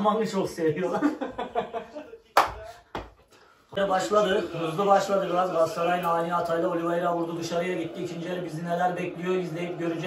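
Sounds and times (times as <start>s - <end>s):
men laughing: 0.8s - 2.9s.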